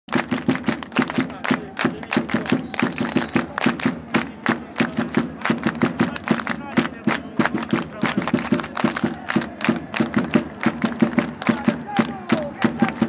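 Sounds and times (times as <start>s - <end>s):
crowd clapping in unison: 0.1s - 13.0s.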